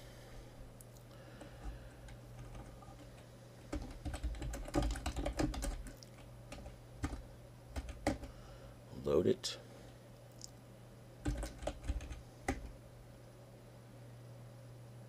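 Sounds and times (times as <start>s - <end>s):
computer keyboard typing: 1.4s - 8.4s, 11.2s - 12.8s.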